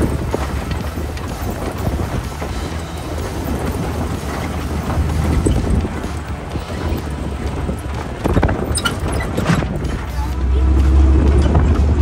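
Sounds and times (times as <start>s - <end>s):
body knocking and rattling: 0.0s - 12.0s
engine rumble: 0.0s - 12.0s
wind buffeting microphone: 0.0s - 12.0s.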